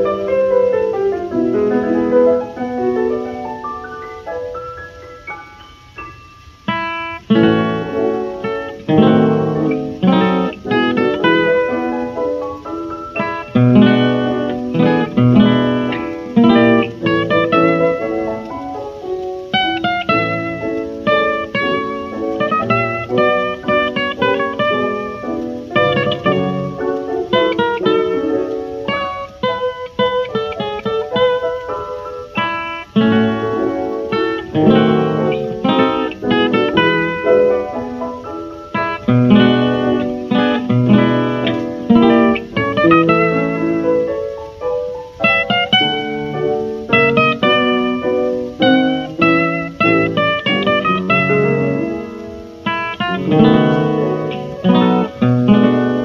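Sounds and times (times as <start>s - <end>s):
jazz guitar playing: 0.0s - 56.0s.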